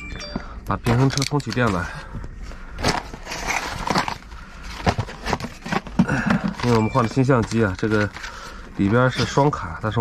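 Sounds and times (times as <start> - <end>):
cardboard rustling and scraping: 2.5 - 10.0.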